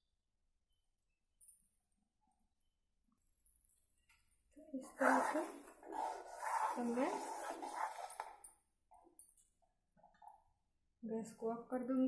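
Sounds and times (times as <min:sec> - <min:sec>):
ladle scraping metal pot: 0:04.8 - 0:08.4.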